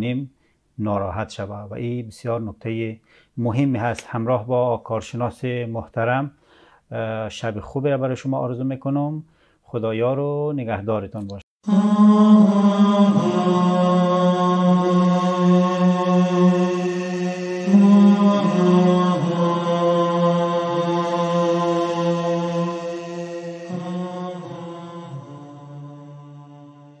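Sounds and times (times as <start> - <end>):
slow vocal chant: 11.6 - 27.0.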